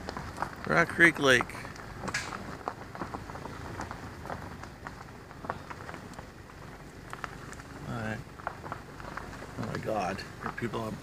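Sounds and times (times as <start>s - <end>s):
light crackles and ticks: 0.0s - 11.0s
vehicle rumbling on bumpy road: 0.0s - 11.0s.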